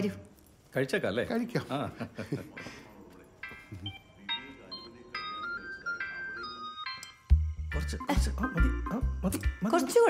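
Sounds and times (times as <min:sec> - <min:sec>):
light melody of high notes: 0:03.4 - 0:10.0.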